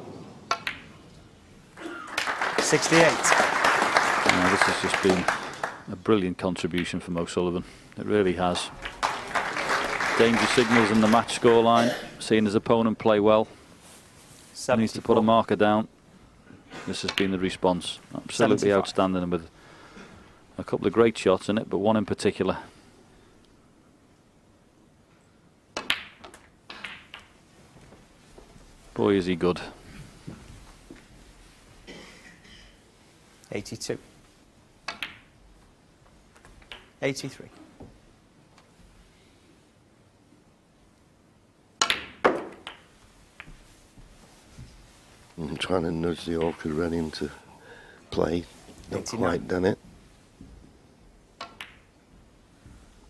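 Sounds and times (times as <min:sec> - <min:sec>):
ball hitting ball click: 0:00.5 - 0:00.9, 0:17.1 - 0:17.3, 0:25.8 - 0:27.3, 0:34.9 - 0:35.3, 0:36.6 - 0:36.9, 0:41.8 - 0:43.5, 0:51.4 - 0:51.9
cue striking ball: 0:41.8 - 0:43.6.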